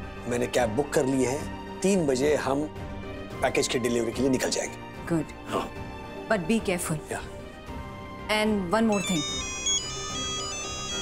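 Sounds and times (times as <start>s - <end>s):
soft background music: 0.0s - 11.0s
mobile phone ringtone: 8.9s - 11.0s.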